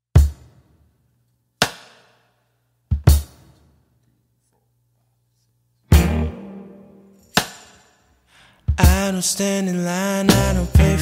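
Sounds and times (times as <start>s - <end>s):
sharp percussive hits with echo: 1.6s - 2.2s, 5.9s - 8.1s.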